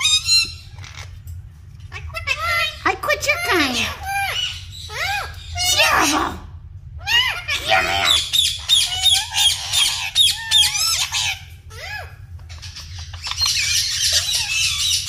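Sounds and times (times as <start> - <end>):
parakeets chattering: 0.0 - 15.0.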